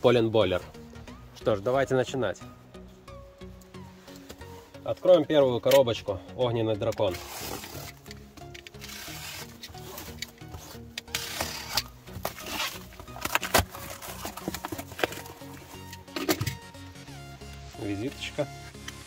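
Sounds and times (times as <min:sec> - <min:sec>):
background music: 0:00.0 - 0:19.0
plastic wrap crinkling and tearing: 0:07.1 - 0:15.9
cardboard flaps opening: 0:09.1 - 0:15.5.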